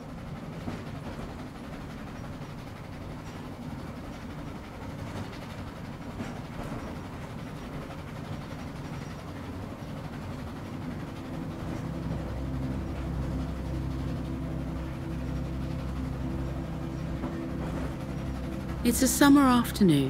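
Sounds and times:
train chugging: 0.0s - 20.0s
low carriage rumble: 10.4s - 20.0s.

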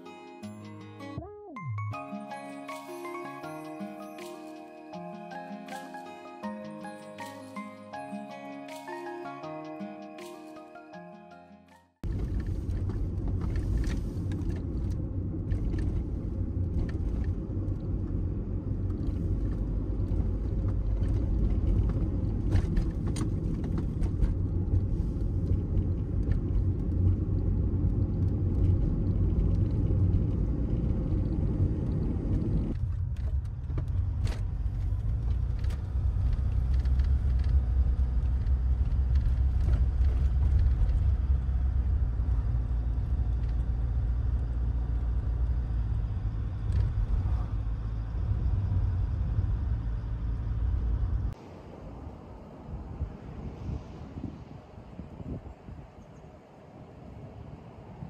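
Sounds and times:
car engine and tyre noise: 12.0s - 58.0s.

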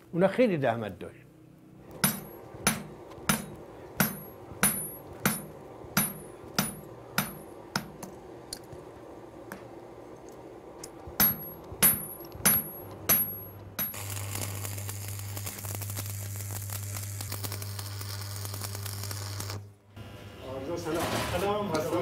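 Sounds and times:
arc welder hum: 1.5s - 22.0s
ringing metal strikes: 2.0s - 8.0s
welding arc crackling hiss: 10.6s - 22.0s.

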